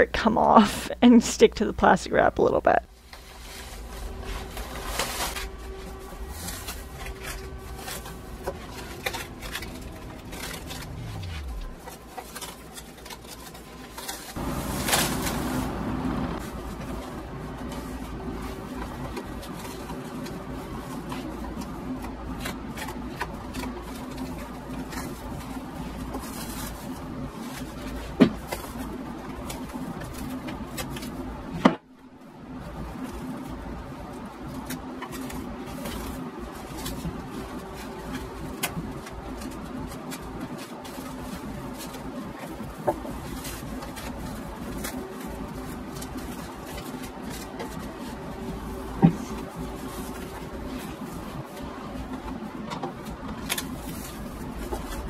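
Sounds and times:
pantyhose peeling off plastic wrap: 3.0s - 31.3s.

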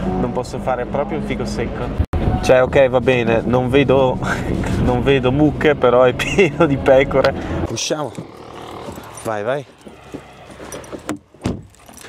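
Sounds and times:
light metallic jingling: 8.8s - 12.0s
car door thump: 11.0s - 11.8s.

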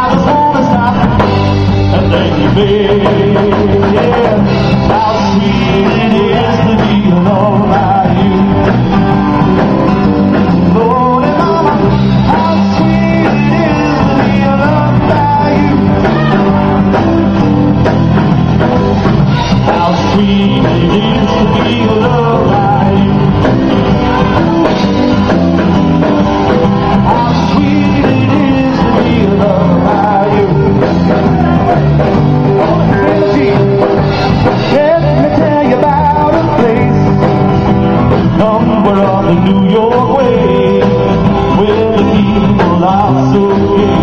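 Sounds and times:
man singing into a microphone: 0.0s - 17.1s, 19.3s - 25.2s, 26.8s - 44.0s
live rock band playing: 0.0s - 44.0s.

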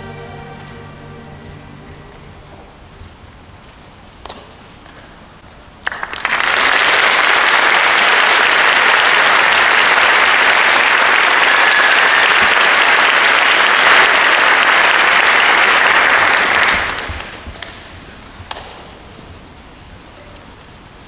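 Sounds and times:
audience applauding: 5.8s - 18.0s.

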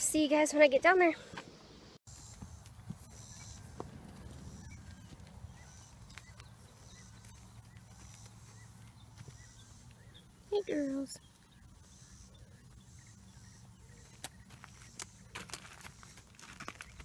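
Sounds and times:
hoof steps on dry dirt: 2.1s - 10.5s, 12.7s - 17.0s.

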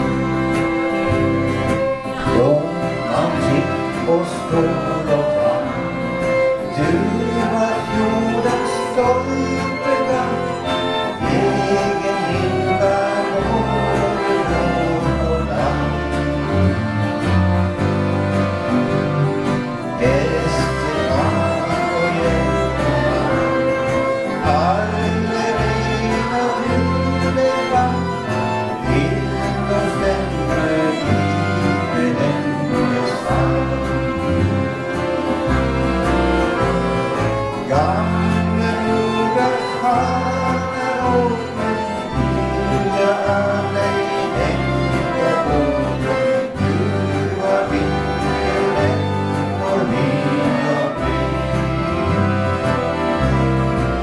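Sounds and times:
accordion orchestra playing: 0.0s - 54.0s.

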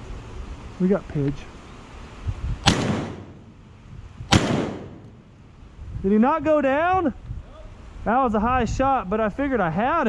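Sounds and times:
shotgun shot: 2.6s - 3.6s, 4.3s - 5.3s.

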